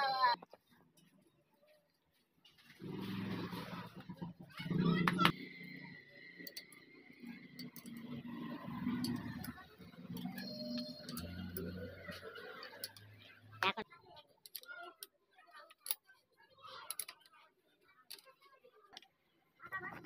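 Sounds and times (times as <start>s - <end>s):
spanner clicking on metal: 7.6s - 8.0s.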